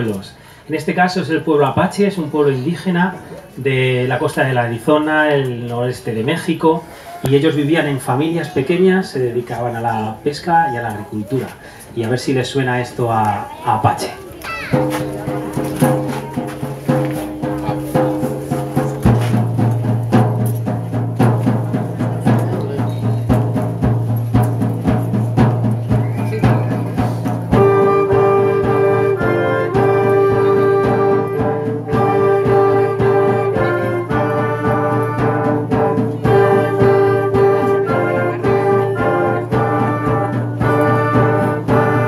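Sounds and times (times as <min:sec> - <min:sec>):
steady percussion beat: 0:13.8 - 0:42.0
concert band playing: 0:14.2 - 0:42.0
wind and brass melody: 0:26.2 - 0:42.0.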